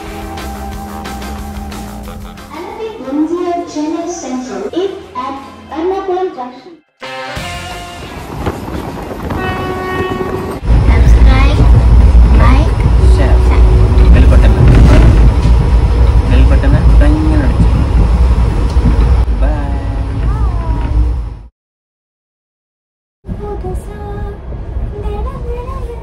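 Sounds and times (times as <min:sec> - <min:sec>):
low rumble of moving train: 0:00.0 - 0:06.6, 0:07.4 - 0:21.5, 0:23.3 - 0:26.0
train horn: 0:09.2 - 0:10.6, 0:13.0 - 0:14.7.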